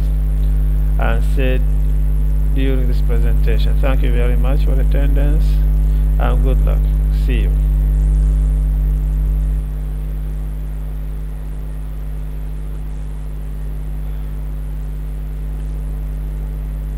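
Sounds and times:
low electrical hum with buzz: 0:00.0 - 0:16.9.

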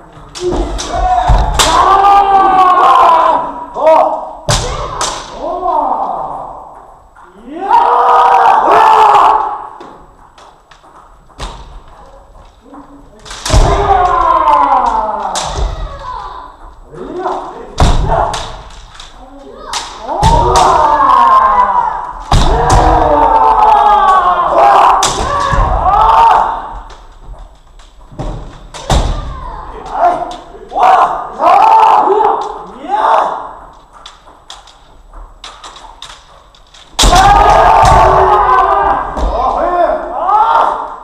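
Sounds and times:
players shouting: 0:00.4 - 0:06.8, 0:07.4 - 0:09.8, 0:13.5 - 0:18.6, 0:19.4 - 0:26.9, 0:29.0 - 0:33.6, 0:37.0 - 0:41.0
bamboo swords striking armour: 0:22.2 - 0:23.1.

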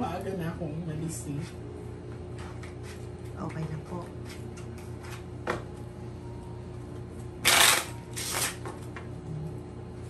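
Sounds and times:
steady low hum: 0:00.0 - 0:10.0
cards being shuffled: 0:07.4 - 0:08.9.

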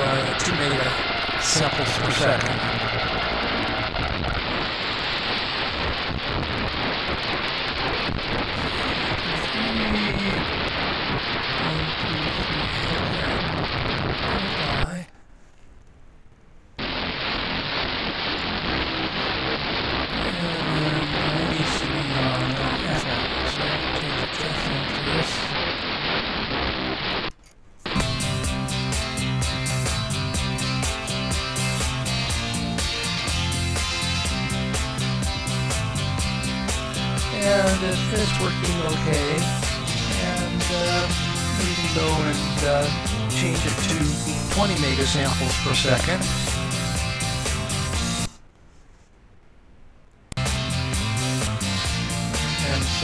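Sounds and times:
faint radio station: 0:00.0 - 0:15.2, 0:16.8 - 0:49.2, 0:50.0 - 0:53.0
radio static hiss: 0:00.0 - 0:15.2, 0:16.8 - 0:49.1, 0:50.3 - 0:53.0.

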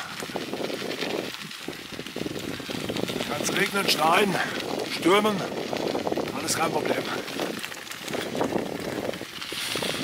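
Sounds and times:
bicycle tyres rolling on gravel: 0:00.0 - 0:10.0.

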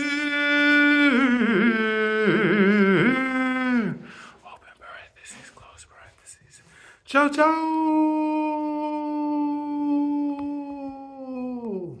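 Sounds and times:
man singing long note: 0:00.0 - 0:04.0.

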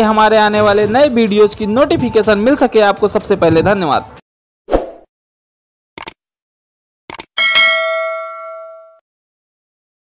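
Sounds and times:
bright bell chime: 0:07.4 - 0:09.0.

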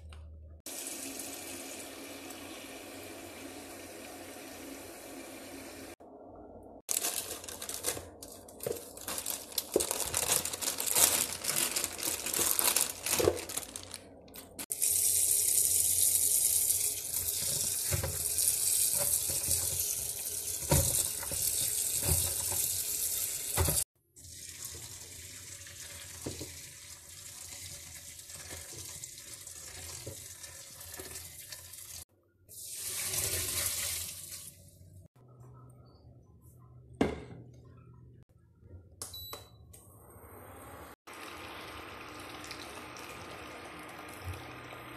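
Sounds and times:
plastic packet crinkling and tearing: 0:06.9 - 0:14.1.

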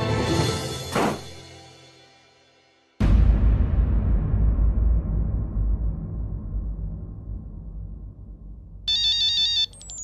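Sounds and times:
electronic phone ringtone: 0:08.9 - 0:10.0.

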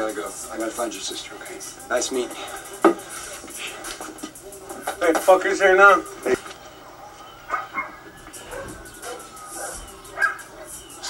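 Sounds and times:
dog barking faintly: 0:06.8 - 0:11.0.

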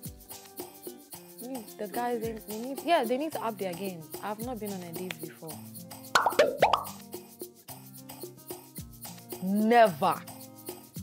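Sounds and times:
light background music: 0:00.0 - 0:11.0
bubbly popping cartoon effects: 0:06.2 - 0:07.0.

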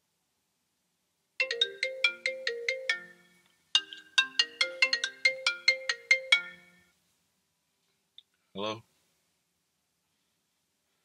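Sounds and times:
mobile phone ringtone: 0:01.4 - 0:06.9.

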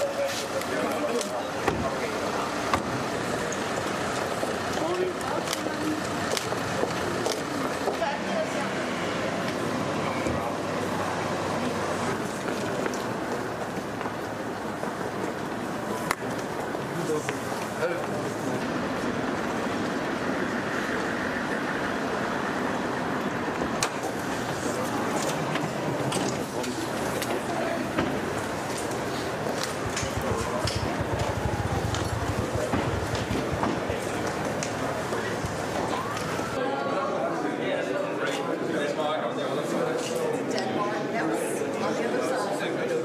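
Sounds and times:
people chattering: 0:00.0 - 0:43.0.

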